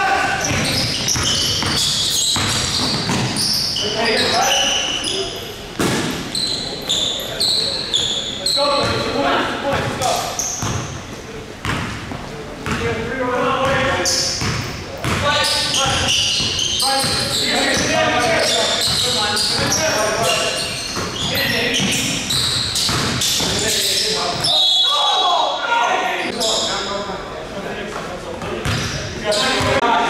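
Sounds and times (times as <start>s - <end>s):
basketball bouncing on wooden floor: 0.4s - 3.4s, 20.9s - 23.6s
players calling out: 15.1s - 26.9s.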